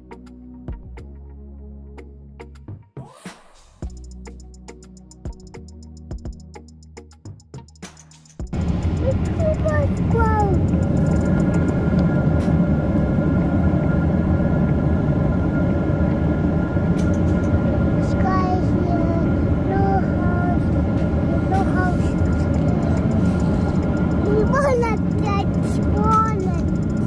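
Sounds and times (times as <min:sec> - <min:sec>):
faint steady hum: 0:08.5 - 0:27.0
jet engine cabin roar: 0:08.5 - 0:27.0
small child calling: 0:09.0 - 0:10.6, 0:24.2 - 0:26.7.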